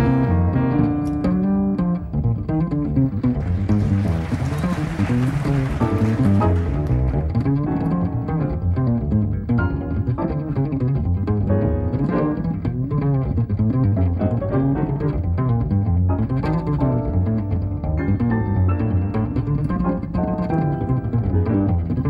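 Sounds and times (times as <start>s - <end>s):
double bass plucked notes: 0.0s - 22.0s.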